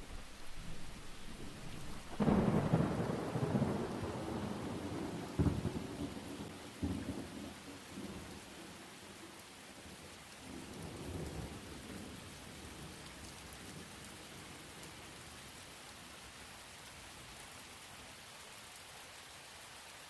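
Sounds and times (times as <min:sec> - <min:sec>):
thunder rumbling: 0:00.0 - 0:08.2
steady rain: 0:00.0 - 0:20.0.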